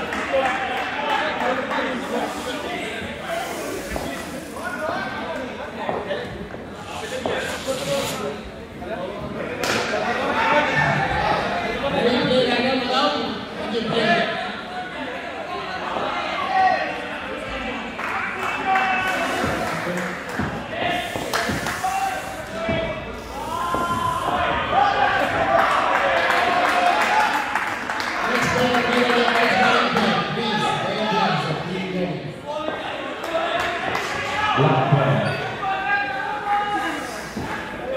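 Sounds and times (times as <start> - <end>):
players' voices echoing: 0.0 - 37.9
players shouting: 14.0 - 27.5.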